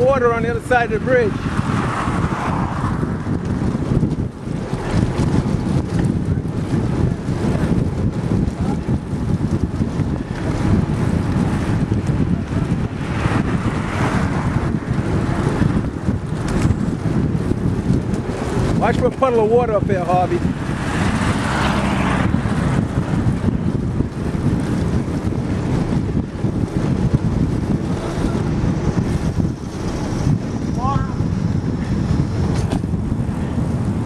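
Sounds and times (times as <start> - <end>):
bicycle tyres on wooden planks: 0.0 - 34.0
wind buffeting microphone: 0.0 - 34.0.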